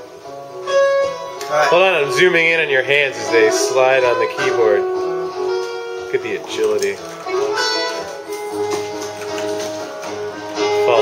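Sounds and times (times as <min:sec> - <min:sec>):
electronic keyboard melody: 0:00.0 - 0:11.0.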